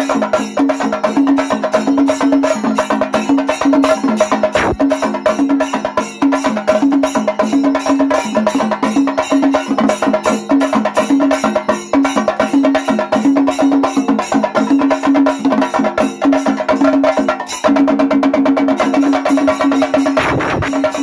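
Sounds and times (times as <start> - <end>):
drums beaten with sticks: 0.0 - 21.0.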